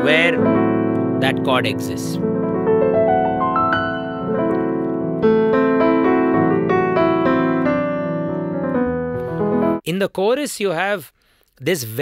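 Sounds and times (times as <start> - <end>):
digital piano chords: 0.0 - 9.8.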